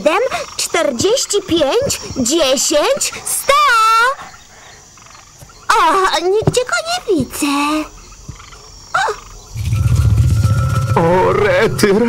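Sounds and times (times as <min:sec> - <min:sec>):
faint steady tone: 0:07.5 - 0:12.0
low fast-pulsing rumble: 0:09.5 - 0:11.7.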